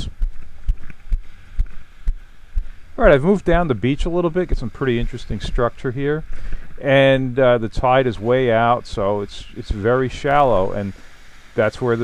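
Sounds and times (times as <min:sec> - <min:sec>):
soft low thuds: 0:00.0 - 0:06.8
wind on microphone: 0:00.0 - 0:11.1.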